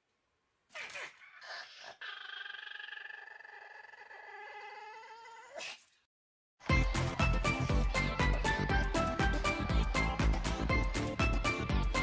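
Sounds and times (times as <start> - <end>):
dog whining: 0.7 - 5.7.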